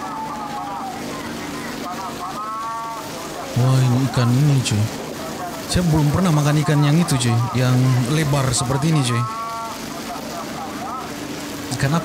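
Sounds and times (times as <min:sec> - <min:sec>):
faint voices: 0:00.0 - 0:12.0
noisy market hubbub: 0:00.0 - 0:12.0.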